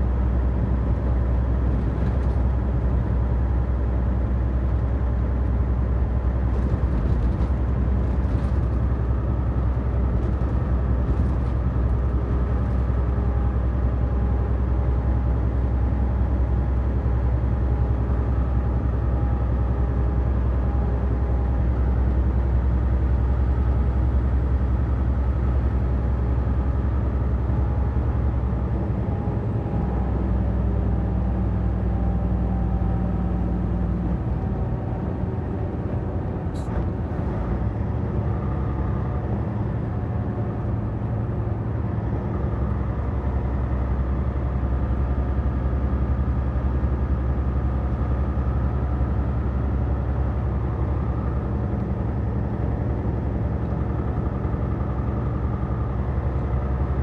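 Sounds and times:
truck engine and tyre drone: 0.0s - 57.0s.

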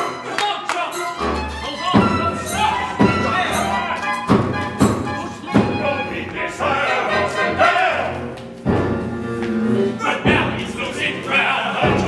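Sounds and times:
musical accompaniment: 0.0s - 12.0s
opera chorus singing: 5.1s - 8.4s, 9.7s - 12.0s.

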